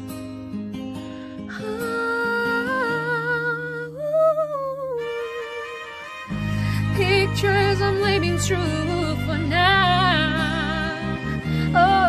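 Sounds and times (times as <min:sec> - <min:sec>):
sustained backing chord: 0:06.0 - 0:12.0.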